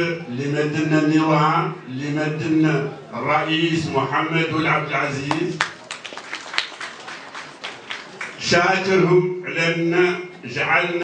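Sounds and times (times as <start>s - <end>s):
scattered handclaps: 5.2s - 8.4s.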